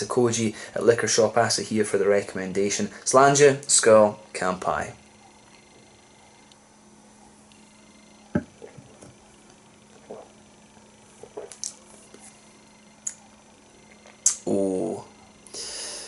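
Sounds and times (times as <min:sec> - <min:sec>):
low steady hum: 0:00.0 - 0:16.0
glass set down on table: 0:08.3 - 0:09.1.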